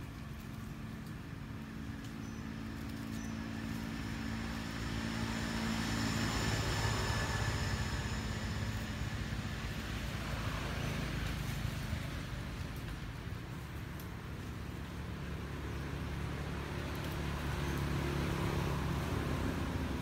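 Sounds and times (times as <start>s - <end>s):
vehicle passing by: 0.0s - 20.0s.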